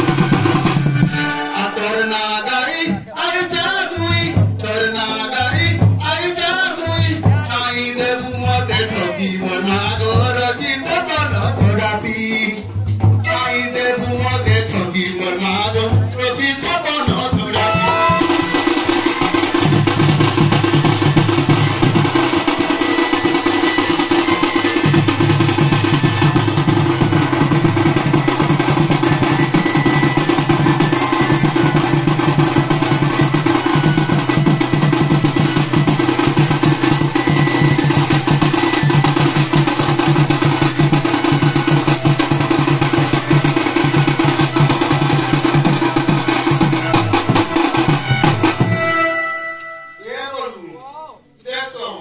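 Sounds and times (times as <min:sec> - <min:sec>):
barrel drums fast rhythm: 0:00.0 - 0:49.1.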